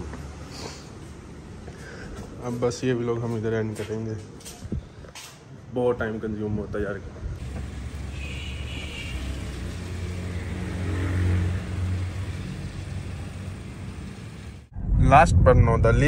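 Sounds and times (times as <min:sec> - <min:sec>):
car engine rumbling: 0:07.4 - 0:16.0.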